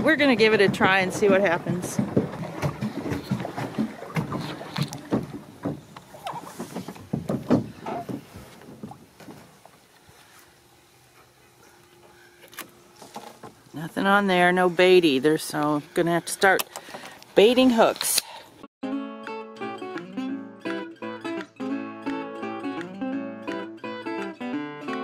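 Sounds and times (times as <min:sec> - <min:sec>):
plastic float knocking on boat: 0:00.0 - 0:09.4.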